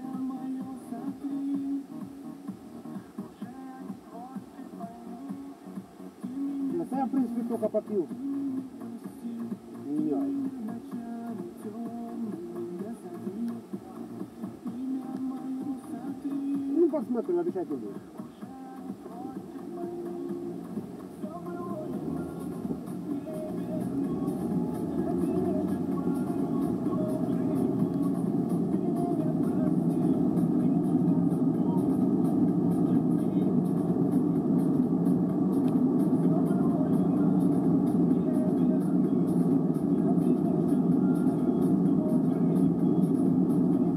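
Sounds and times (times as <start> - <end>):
car engine and road noise: 0.0 - 43.9.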